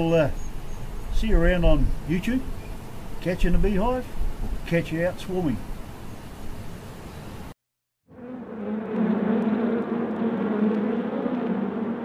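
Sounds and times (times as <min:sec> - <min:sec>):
honeybees buzzing: 0:00.0 - 0:04.7, 0:08.1 - 0:12.0.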